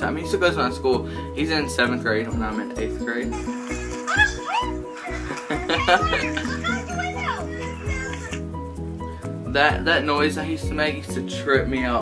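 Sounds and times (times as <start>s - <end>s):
background music: 0.0s - 12.0s
children's voices through phone speaker: 5.8s - 8.4s.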